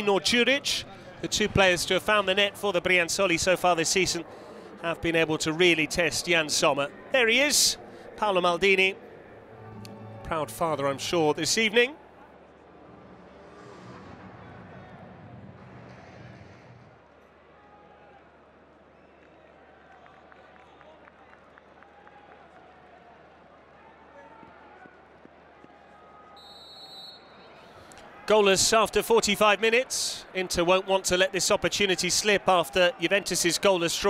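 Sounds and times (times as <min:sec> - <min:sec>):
distant crowd murmur: 0:00.0 - 0:16.6
referee's whistle: 0:26.4 - 0:27.6.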